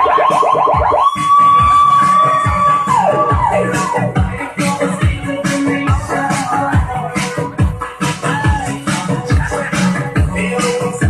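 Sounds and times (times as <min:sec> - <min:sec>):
siren-like synth: 0:00.0 - 0:03.7.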